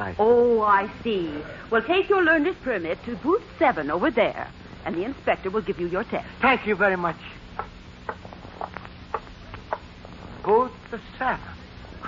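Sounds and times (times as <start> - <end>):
low recording hum: 0.0 - 12.0.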